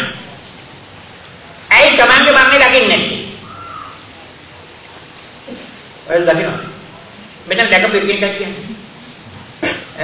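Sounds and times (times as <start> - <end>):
steady room hiss: 0.0 - 10.0.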